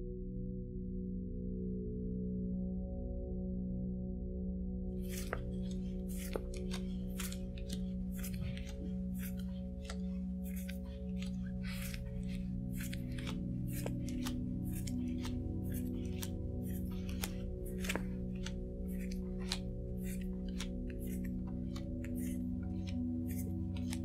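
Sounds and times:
quiet background music: 0.0 - 24.0
playing cards dealt onto table: 5.0 - 24.0.

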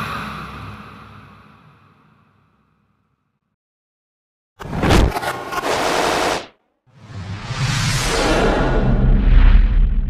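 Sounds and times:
swelling sound effect: 7.0 - 10.0.

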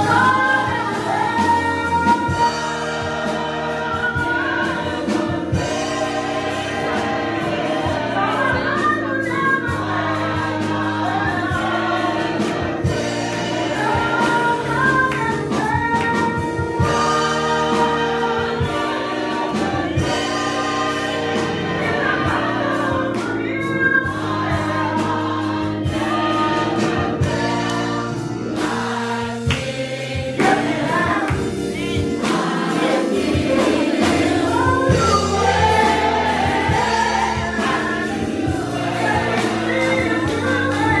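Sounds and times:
choir singing in harmony: 0.0 - 41.0
instrumental accompaniment: 0.0 - 41.0
steady beat: 0.0 - 41.0.

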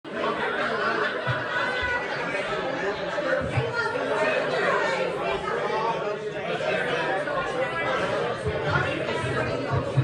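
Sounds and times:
babble of overlapping voices: 0.1 - 10.0.

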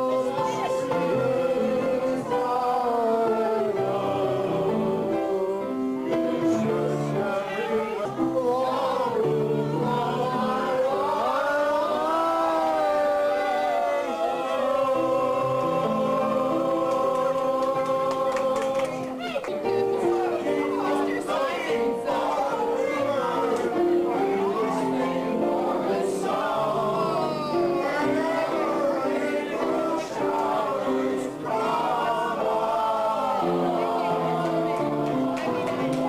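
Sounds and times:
choir singing held chords: 0.0 - 36.0.

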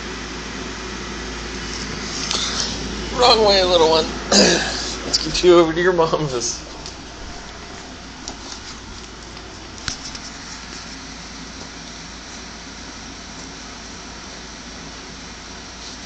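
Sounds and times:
room noise hiss: 0.0 - 16.0.

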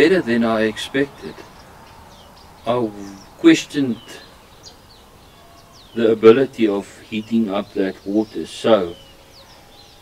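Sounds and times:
faint bird chirps: 0.0 - 10.0
outdoor background noise: 0.0 - 10.0.

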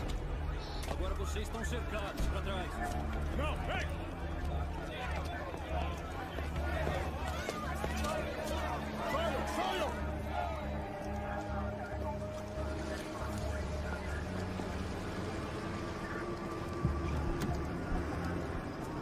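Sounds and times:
low music drone: 0.0 - 19.0
voices shouting: 0.0 - 19.0.

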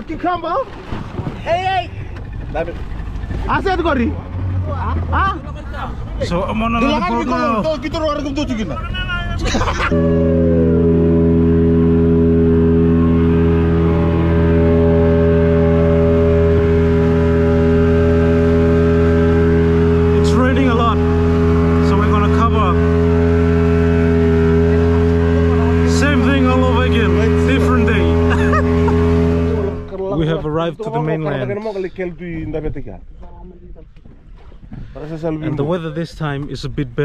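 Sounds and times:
outboard motor droning: 0.0 - 36.6.

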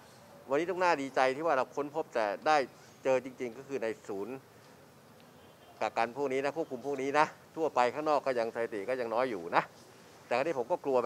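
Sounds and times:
man speaking: 0.5 - 4.4, 5.8 - 11.0.

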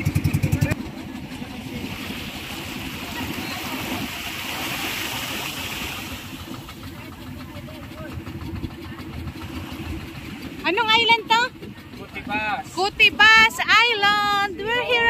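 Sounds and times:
small waves washing onto sand: 0.0 - 10.7
steady low rumble: 0.0 - 15.0.

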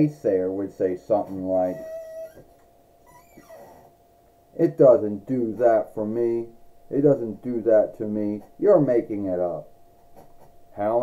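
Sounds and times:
man speaking: 0.0 - 1.9, 4.6 - 9.7, 10.8 - 11.0
faint steady tone: 0.0 - 11.0.

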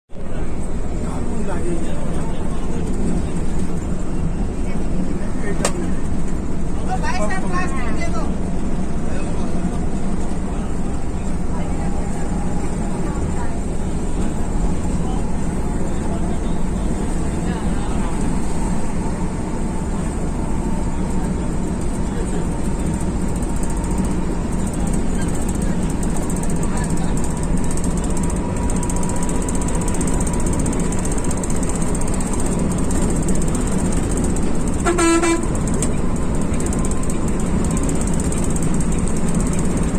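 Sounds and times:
diesel coach engine drone: 0.1 - 39.9
road noise: 0.1 - 39.9.

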